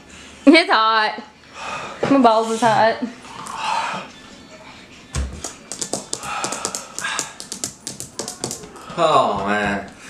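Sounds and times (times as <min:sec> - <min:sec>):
sharp clicks and taps: 0:05.4 - 0:08.8
breathy hisses: 0:06.1 - 0:07.6.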